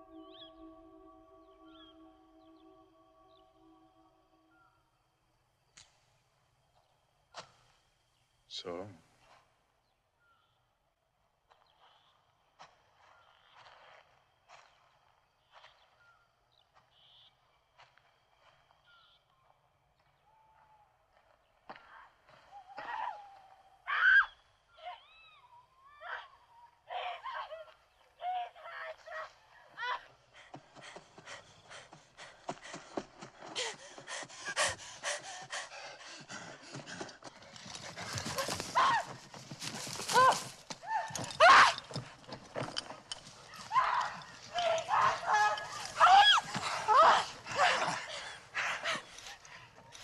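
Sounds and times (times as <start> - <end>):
rising and falling cries: 0.0 - 4.8, 43.4 - 49.1
horses' hooves galloping: 30.2 - 50.0.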